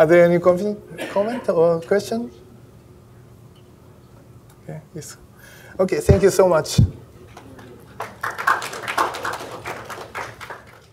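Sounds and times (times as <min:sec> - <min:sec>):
audience applauding: 0:07.4 - 0:10.9.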